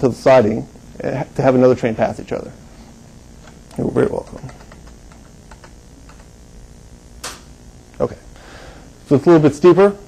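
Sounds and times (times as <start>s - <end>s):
man speaking: 0.0s - 2.6s, 3.7s - 4.6s, 7.9s - 8.4s, 9.0s - 10.0s
low room hum: 0.0s - 10.0s.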